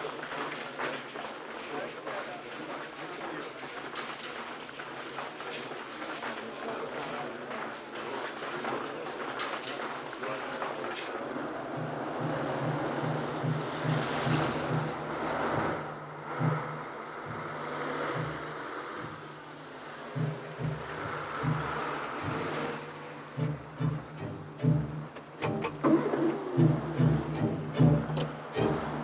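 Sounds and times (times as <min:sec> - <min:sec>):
passing car and lorry engines: 0:00.0 - 0:29.0.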